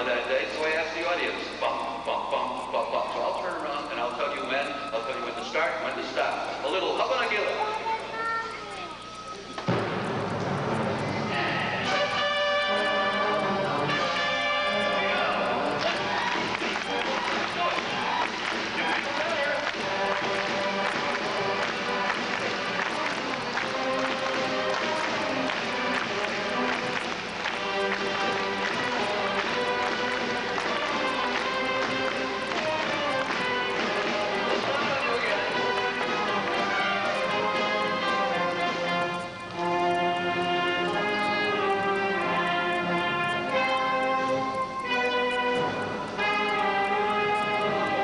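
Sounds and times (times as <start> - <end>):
percussion strokes: 0.0 - 48.0
concert band playing: 9.6 - 48.0.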